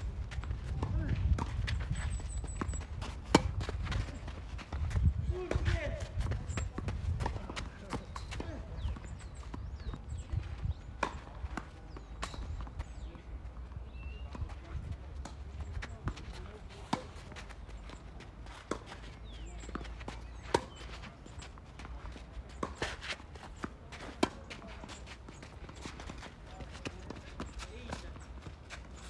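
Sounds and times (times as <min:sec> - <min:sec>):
low wind rumble on microphone: 0:00.0 - 0:07.6, 0:08.7 - 0:11.0
footsteps on clay court: 0:00.0 - 0:29.0
tennis ball hitting racket: 0:02.6 - 0:09.1, 0:19.6 - 0:21.4
tennis ball struck by rackets: 0:03.2 - 0:03.7, 0:20.4 - 0:20.8.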